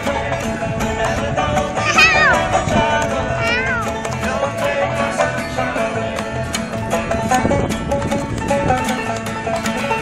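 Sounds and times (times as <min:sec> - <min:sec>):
acoustic guitar: 0:00.0 - 0:10.0
upright double bass: 0:00.0 - 0:10.0.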